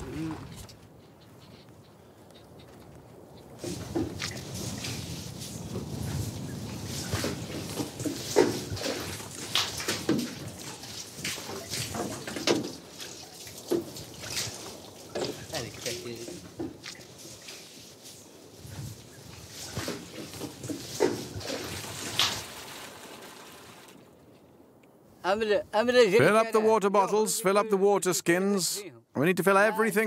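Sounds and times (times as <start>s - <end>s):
water splashing and sloshing: 3.5s - 24.8s.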